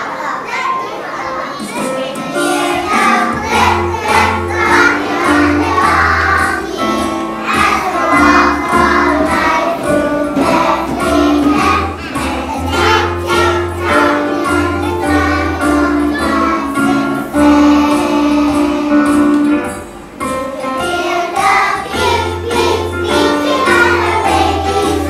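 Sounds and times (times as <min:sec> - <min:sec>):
children's choir singing: 0:00.0 - 0:25.0
instrumental accompaniment with bass: 0:02.5 - 0:25.0.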